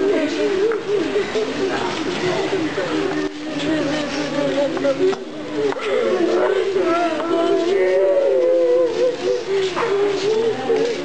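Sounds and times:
voices chanting a slow prayer: 0.0s - 11.0s.

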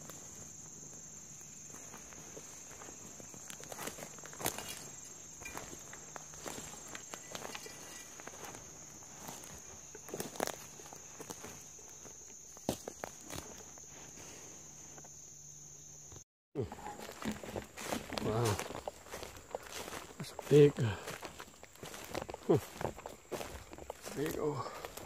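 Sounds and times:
footsteps in dry leaves: 0.0s - 14.3s, 16.7s - 25.0s
high-pitched insect drone: 0.0s - 25.0s.

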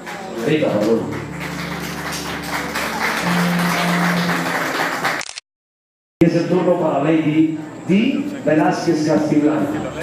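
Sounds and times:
audience applauding: 0.0s - 5.3s
background music with low notes: 0.3s - 5.0s.

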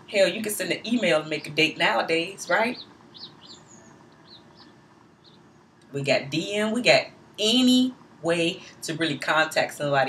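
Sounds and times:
small bird chirping: 1.0s - 5.9s.

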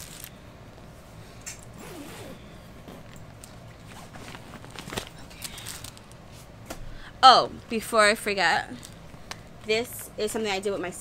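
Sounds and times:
bag zipper opening: 1.6s - 4.6s.

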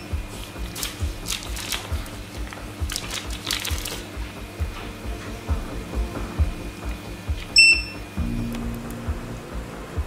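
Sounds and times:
background music with low beat: 0.0s - 10.0s.

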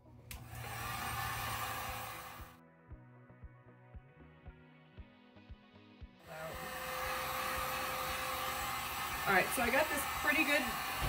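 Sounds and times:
background music with steady beat: 0.0s - 8.2s
heat gun blowing: 0.3s - 2.6s, 6.3s - 11.0s.

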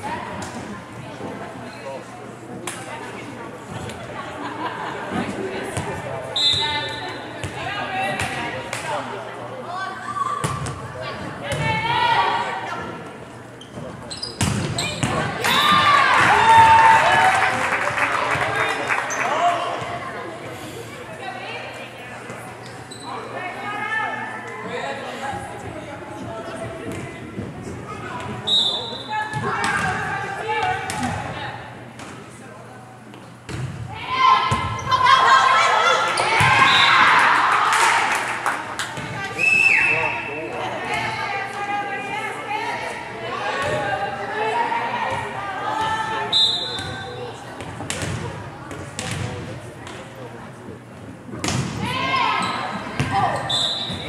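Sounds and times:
referee whistle blasts: 46.3s - 47.1s, 53.4s - 54.0s.

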